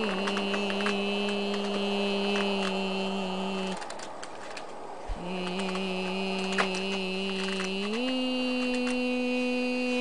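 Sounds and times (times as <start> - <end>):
person humming low note: 0.0 - 4.0, 5.1 - 10.0.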